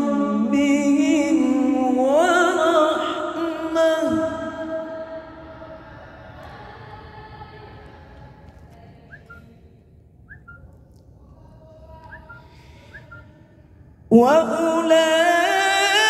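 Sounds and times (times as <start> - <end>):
short whistle-like chirps: 9.1 - 9.5, 10.2 - 10.8, 12.0 - 13.4.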